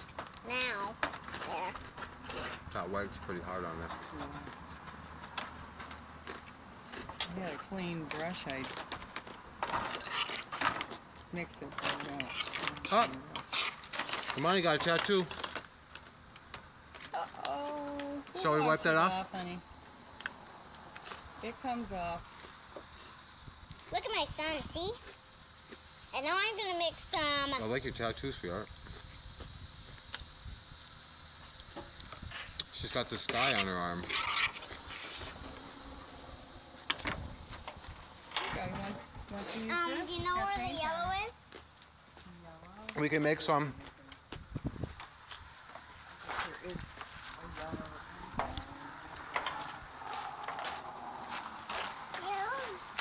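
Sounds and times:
steady background hiss: 0:00.0 - 0:53.0.

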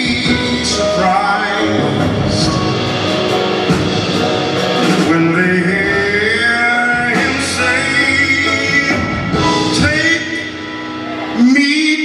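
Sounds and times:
man singing long gliding notes: 0:00.0 - 0:03.4, 0:04.7 - 0:12.0
live jazz band playing: 0:00.0 - 0:12.0.

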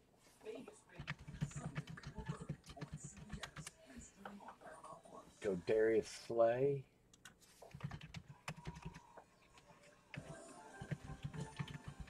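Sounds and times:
keyboard typing clicks: 0:07.1 - 0:09.0, 0:09.6 - 0:12.0.

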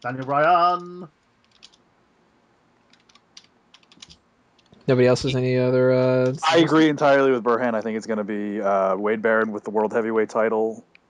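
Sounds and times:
man speaking: 0:00.0 - 0:01.1, 0:04.9 - 0:10.8
typing on computer keyboard: 0:00.0 - 0:01.8, 0:02.9 - 0:04.8.

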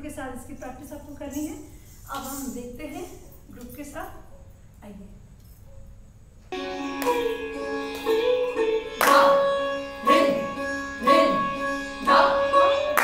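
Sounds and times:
percussion strokes: 0:06.5 - 0:13.0
sustained melodic tones: 0:06.5 - 0:13.0.

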